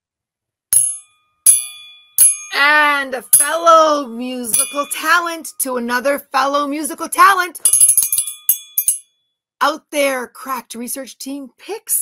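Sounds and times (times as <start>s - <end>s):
steel triangle ringing: 0.7s - 3.8s, 4.5s - 5.6s, 7.6s - 9.2s.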